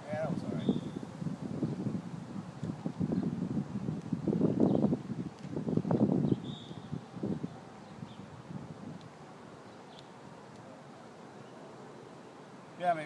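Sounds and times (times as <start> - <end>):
wind buffeting microphone: 0.0 - 9.6.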